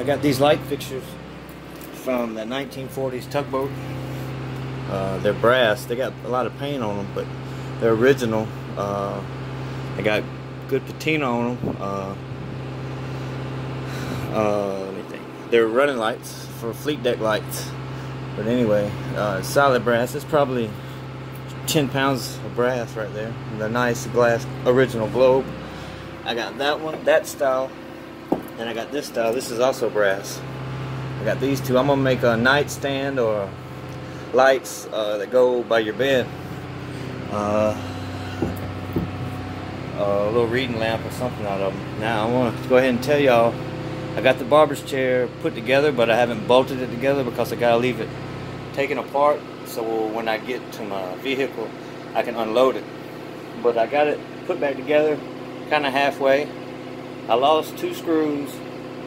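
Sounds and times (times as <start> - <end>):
machinery humming: 0.0 - 59.0
light knocks: 28.3 - 28.6, 38.4 - 39.2.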